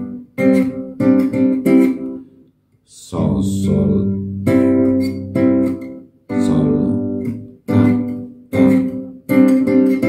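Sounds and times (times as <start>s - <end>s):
classical guitar fingerstyle chords: 0.0s - 2.4s, 3.2s - 10.0s.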